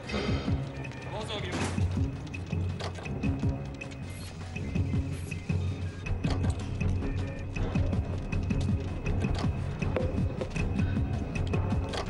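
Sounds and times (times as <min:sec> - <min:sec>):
tense film score music: 0:00.0 - 0:12.0.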